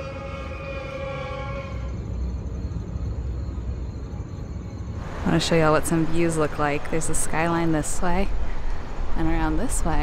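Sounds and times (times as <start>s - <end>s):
distant traffic rumble: 0.0s - 10.0s.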